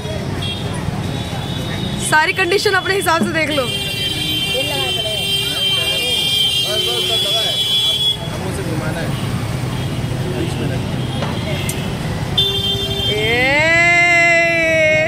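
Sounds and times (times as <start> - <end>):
distant voices chattering: 0.0 - 13.4
traffic rumble: 0.0 - 15.0
high-pitched vehicle horn: 1.5 - 8.4.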